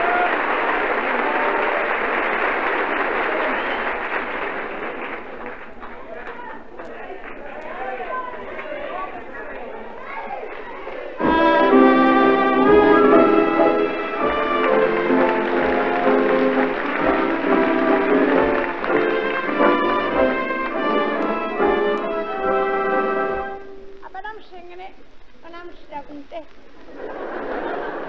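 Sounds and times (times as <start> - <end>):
pit orchestra with brass: 11.2 - 24.0.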